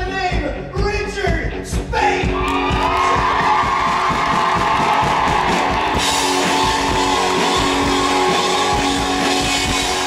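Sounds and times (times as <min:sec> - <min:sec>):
drums: 0:00.0 - 0:10.0
electric guitar: 0:01.5 - 0:10.0
audience cheering and screaming: 0:02.2 - 0:10.0.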